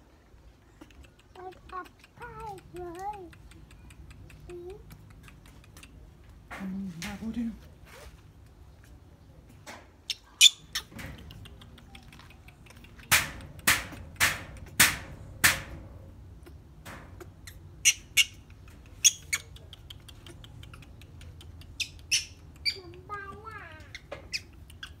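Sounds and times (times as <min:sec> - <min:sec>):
baby monkey squeaking: 0:10.1 - 0:11.0, 0:17.2 - 0:25.0.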